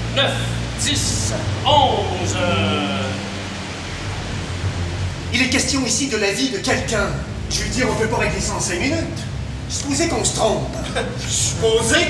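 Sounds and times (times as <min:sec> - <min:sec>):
low hum: 0:00.0 - 0:12.0
steady hiss: 0:00.0 - 0:12.0.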